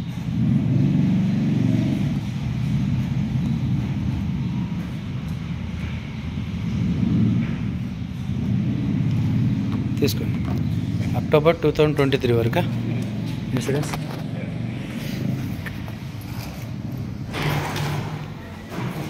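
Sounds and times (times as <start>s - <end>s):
vehicle engine rumbling: 0.0s - 19.0s.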